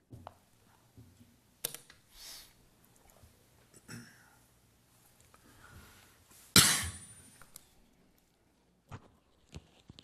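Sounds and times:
man coughing: 0:03.8 - 0:04.3, 0:06.6 - 0:07.1.

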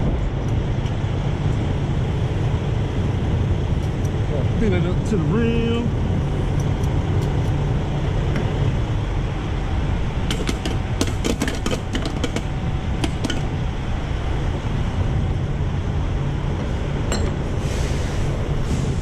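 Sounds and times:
diesel truck engines idling: 0:00.0 - 0:19.0.

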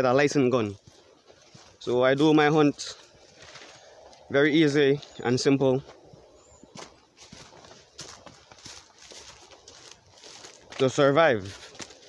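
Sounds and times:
footsteps crunching leaves and twigs: 0:00.0 - 0:12.0.

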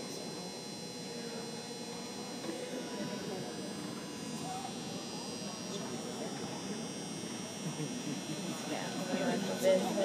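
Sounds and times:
indoor arena hum and buzz: 0:00.0 - 0:10.0.

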